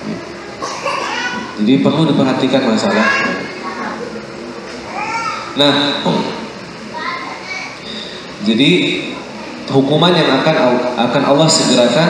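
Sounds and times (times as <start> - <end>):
children's high-pitched calls: 0.7 - 1.6, 2.8 - 4.2, 4.8 - 5.6, 6.9 - 8.2
man talking: 1.6 - 3.5, 5.6 - 6.4, 8.4 - 9.1, 9.7 - 12.0.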